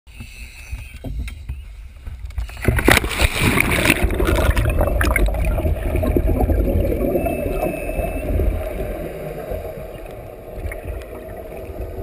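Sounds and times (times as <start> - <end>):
water sloshing: 2.0 - 12.0.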